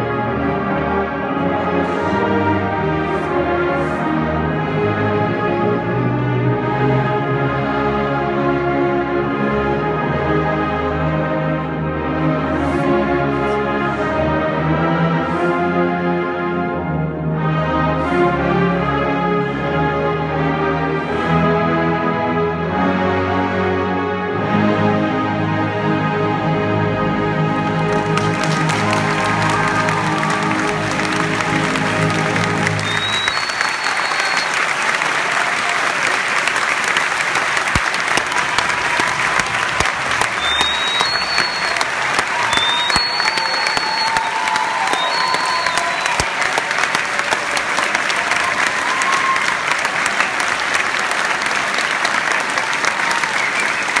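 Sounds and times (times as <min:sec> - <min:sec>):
audience applause: 0:27.5 - 0:54.0
whistles and cheers: 0:27.8 - 0:36.7, 0:37.7 - 0:54.0.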